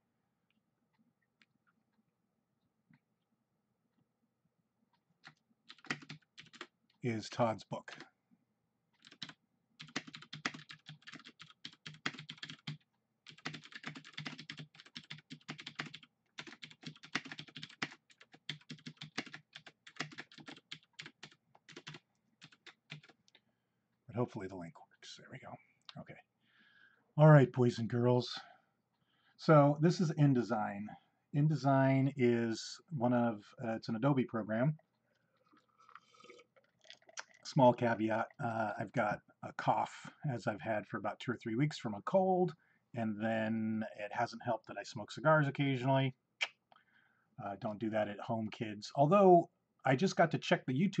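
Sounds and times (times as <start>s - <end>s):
typing on computer keyboard: 5.2s - 6.7s, 9.0s - 23.4s
man sipping and swallowing: 34.8s - 37.5s.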